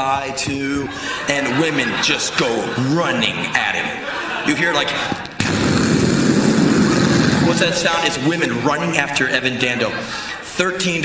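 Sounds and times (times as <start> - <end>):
man making rumbling noise with voice: 5.4 - 8.5.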